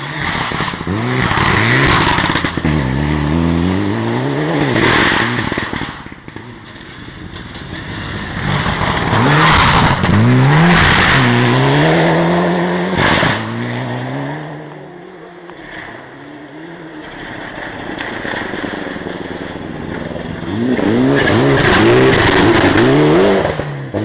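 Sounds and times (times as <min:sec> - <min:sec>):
rally car engine revving: 0:00.0 - 0:24.0.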